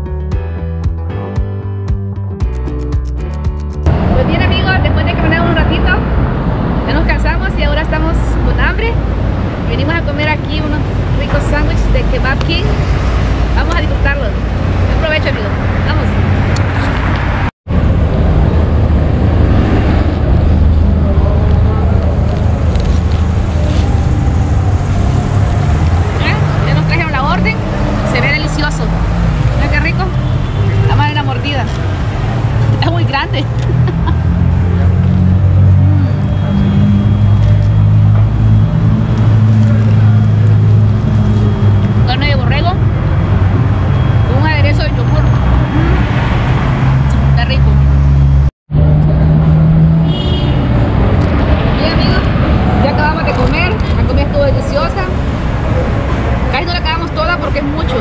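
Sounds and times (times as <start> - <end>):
street voices: 3.8 - 58.0.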